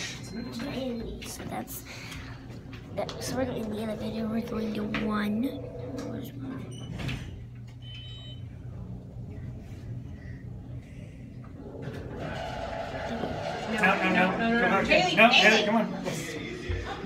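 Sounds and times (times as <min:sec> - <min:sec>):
elevator car humming: 0:02.3 - 0:15.7.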